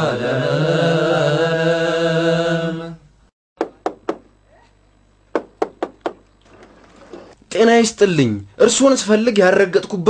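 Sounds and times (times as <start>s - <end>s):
knocking on wooden door: 5.3s - 6.2s.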